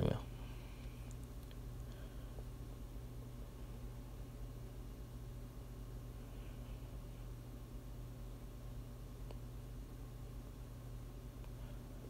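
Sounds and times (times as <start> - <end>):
faint steady low hum: 0.0 - 12.0.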